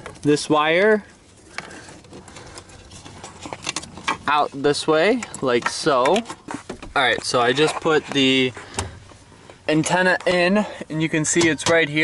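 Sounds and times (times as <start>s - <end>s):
wire rustling behind plastic trim: 0.0s - 10.6s.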